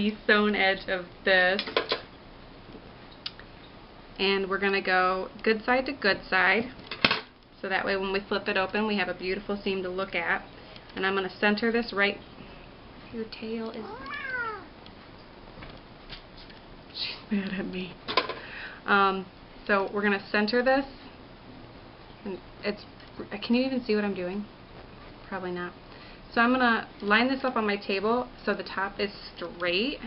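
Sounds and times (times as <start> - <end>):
cat meowing: 13.8 - 14.7.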